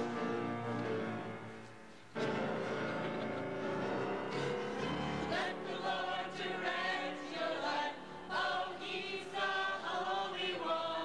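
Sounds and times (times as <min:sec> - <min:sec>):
group of voices singing in chorus: 0:04.8 - 0:11.0.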